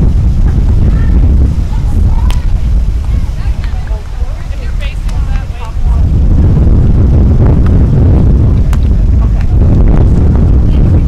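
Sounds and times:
faint voices: 0.0 - 6.7, 8.1 - 11.0
wind buffeting microphone: 0.0 - 11.0.

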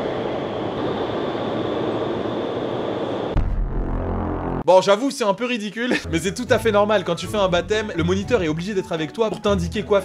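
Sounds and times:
wind tunnel air rushing: 0.0 - 3.5.

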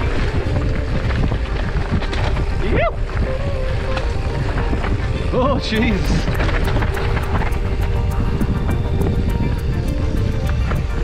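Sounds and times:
background music with steady beat: 0.0 - 11.0
mountain bike rumbling and rattling: 0.0 - 11.0
wind on microphone: 0.0 - 11.0.

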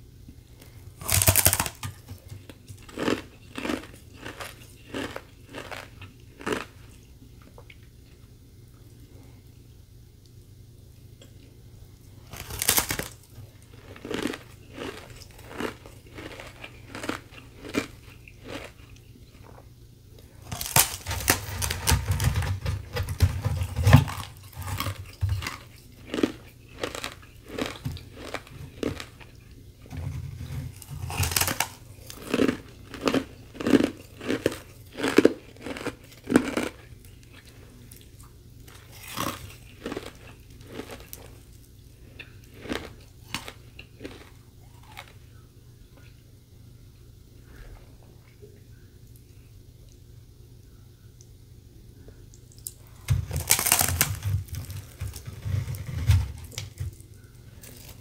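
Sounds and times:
crunching ice: 1.0 - 6.8, 12.2 - 19.4, 20.4 - 29.4, 30.1 - 36.9, 38.8 - 41.3, 53.2 - 57.0, 57.6 - 58.0.

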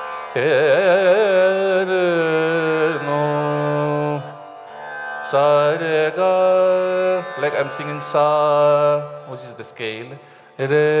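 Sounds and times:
tanpura drone: 0.0 - 11.0
man singing long notes: 0.3 - 4.4, 5.2 - 11.0.

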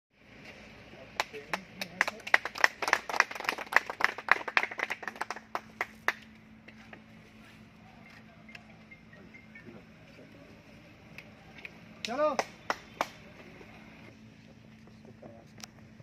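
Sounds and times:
people clapping: 1.1 - 6.4, 11.1 - 13.4.

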